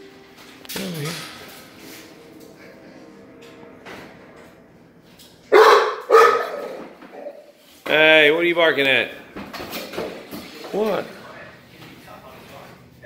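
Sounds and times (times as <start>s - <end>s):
dog barking: 5.5s - 7.4s.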